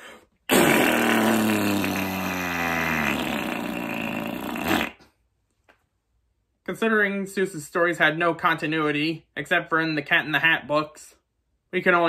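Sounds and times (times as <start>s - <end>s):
mouth-made fart noise: 0.4s - 5.2s.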